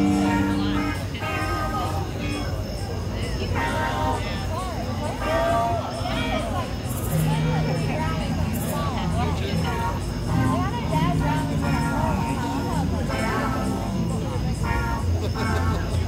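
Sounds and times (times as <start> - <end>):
voices over music: 0.0 - 16.0.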